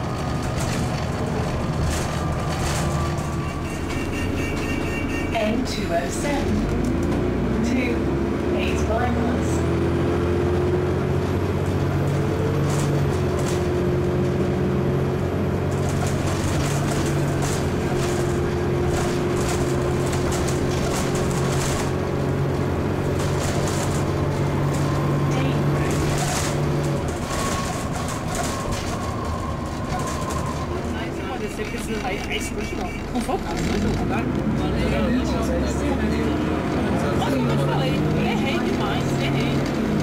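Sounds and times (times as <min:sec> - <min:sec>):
bus diesel engine revving high: 0:05.3 - 0:31.7, 0:32.4 - 0:40.0.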